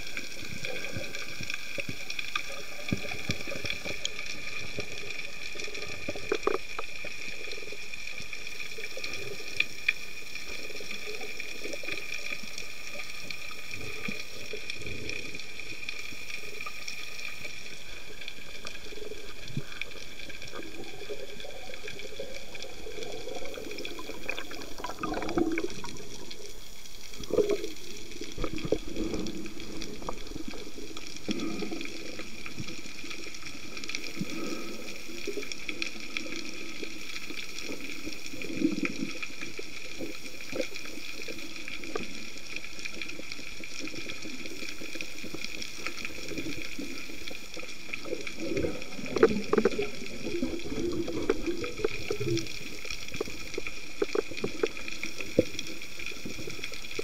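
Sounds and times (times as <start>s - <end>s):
muffled rumbles of moving water: 0.0s - 57.0s
underwater hiss: 0.0s - 57.0s.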